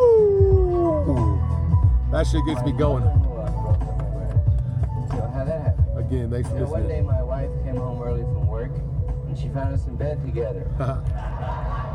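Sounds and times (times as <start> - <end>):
dog howling: 0.0 - 1.4
dog whining: 0.0 - 1.4
hip-hop beat with bass: 0.0 - 11.9.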